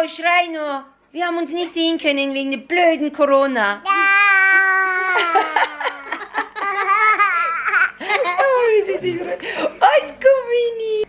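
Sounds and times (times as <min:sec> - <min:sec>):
baby laughing: 0:03.9 - 0:08.7
girl laughing: 0:04.0 - 0:09.1.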